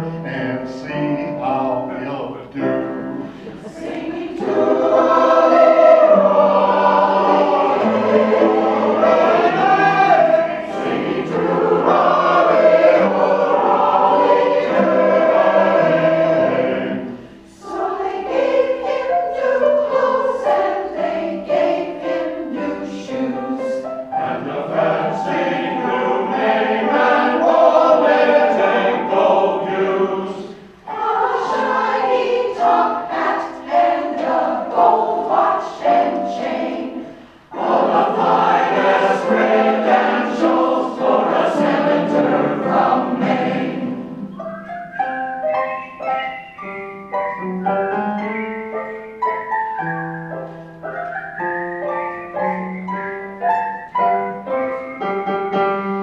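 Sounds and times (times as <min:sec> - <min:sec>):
large choir singing: 0:00.0 - 0:44.5.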